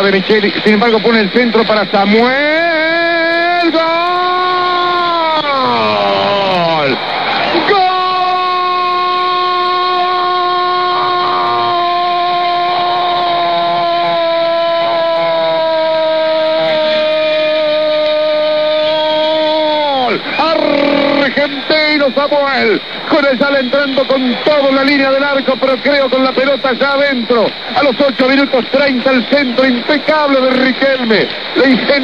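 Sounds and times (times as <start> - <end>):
commentator's drawn-out goal cry: 2.2 - 22.0.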